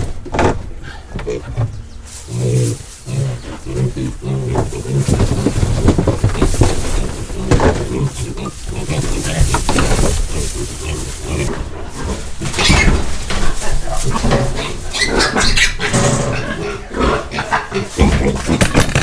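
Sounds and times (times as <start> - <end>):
pigs grunting: 0.7 - 19.0
rustling in bedding: 2.0 - 15.3
piglets squealing: 12.4 - 13.0, 14.2 - 18.0.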